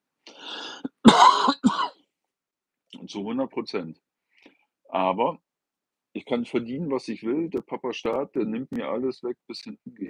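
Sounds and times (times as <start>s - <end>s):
raspy cough: 0.9s - 2.0s
man clearing his throat: 1.0s - 2.0s.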